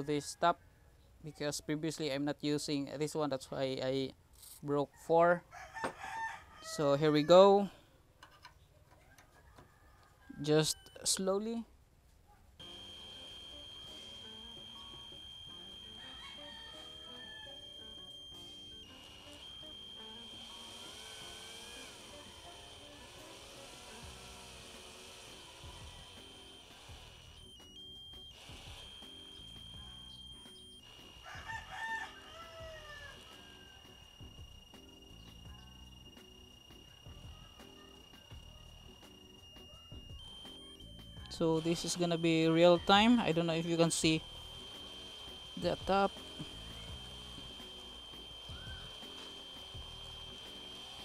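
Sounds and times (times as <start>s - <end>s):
distant rooster crowing: 5.0s - 7.8s, 9.0s - 11.3s, 12.8s - 26.6s, 27.2s - 51.0s
cordless drill motor whine: 12.6s - 51.0s.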